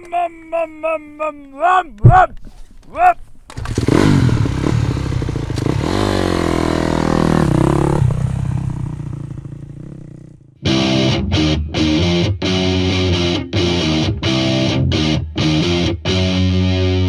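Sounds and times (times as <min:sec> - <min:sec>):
motocross bike engine revving: 0:03.5 - 0:10.4.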